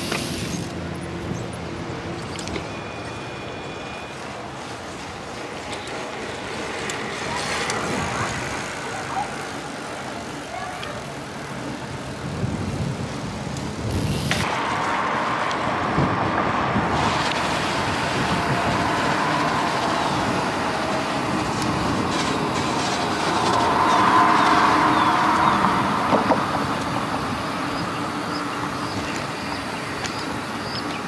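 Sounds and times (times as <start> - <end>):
tyre road hum: 0.0 - 31.0
wind on microphone: 11.8 - 29.7.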